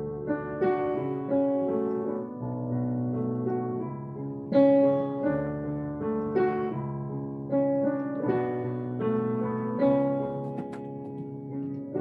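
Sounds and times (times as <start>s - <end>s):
slow solo piano piece: 0.0s - 12.0s.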